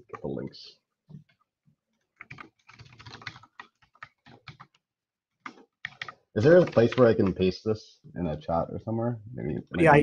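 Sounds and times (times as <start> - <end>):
typing on keyboard: 2.0 - 7.4.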